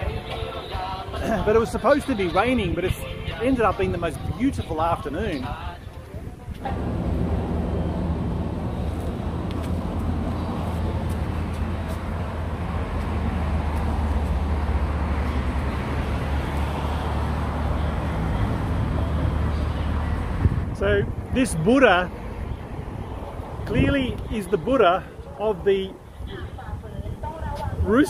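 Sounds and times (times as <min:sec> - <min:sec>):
light traffic noise: 0:00.0 - 0:28.0
vehicle engine idling: 0:06.6 - 0:20.5.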